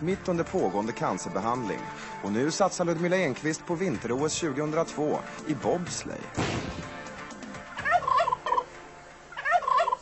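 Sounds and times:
turkey gobbling: 0:07.7 - 0:10.0.

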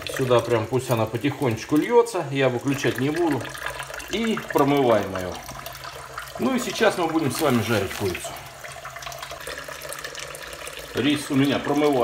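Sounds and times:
tap water running into bowl: 0:00.0 - 0:12.0.

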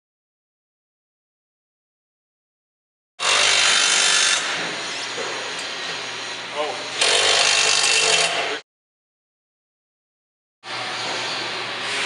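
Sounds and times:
power tool driving bolts: 0:03.2 - 0:04.7, 0:07.0 - 0:08.6.

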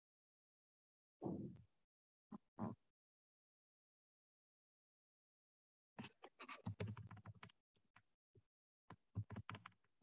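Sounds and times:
typing on computer keyboard: 0:06.6 - 0:07.5, 0:09.2 - 0:09.8.

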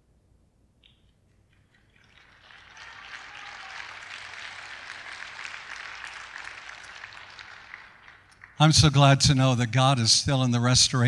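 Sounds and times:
congregation applauding: 0:01.4 - 0:09.7.

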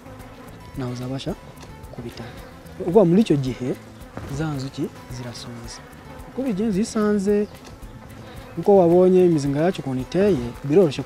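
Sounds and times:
bees buzzing: 0:00.0 - 0:11.0
man speaking: 0:00.8 - 0:01.4, 0:02.0 - 0:07.5, 0:08.6 - 0:11.0.

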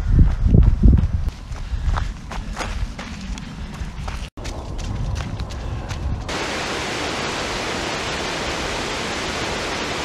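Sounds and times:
stream water rushing: 0:06.3 - 0:10.0.

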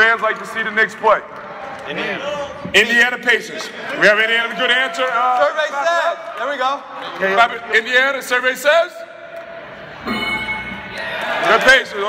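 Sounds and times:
game show bell over speakers: 0:10.0 - 0:11.6.

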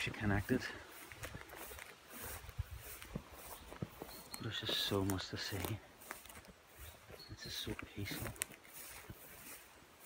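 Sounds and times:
footsteps through grass: 0:00.0 - 0:10.0.

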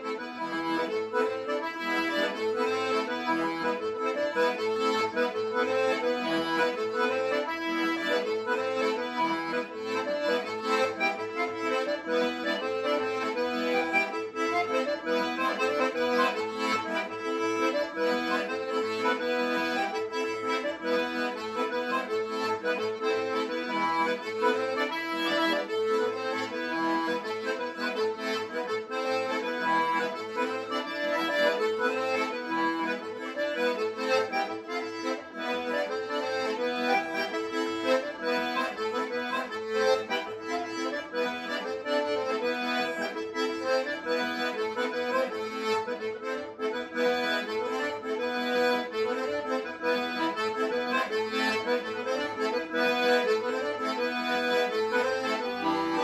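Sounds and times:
button accordion playing folk tune: 0:00.0 - 0:56.0.

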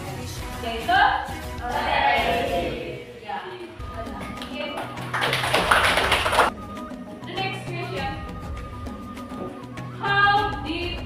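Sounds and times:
background music with singing: 0:00.0 - 0:11.0.

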